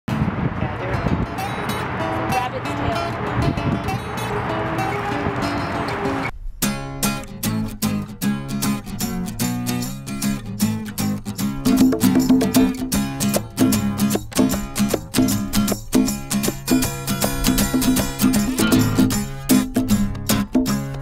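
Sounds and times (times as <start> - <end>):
acoustic guitar strumming: 0.1 - 21.0
busy wash of voices: 0.3 - 6.3
conga drum hits: 11.7 - 19.2.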